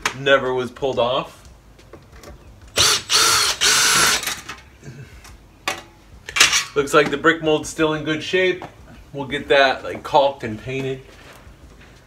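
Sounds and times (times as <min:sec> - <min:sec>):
cordless drill running: 0:02.8 - 0:04.3.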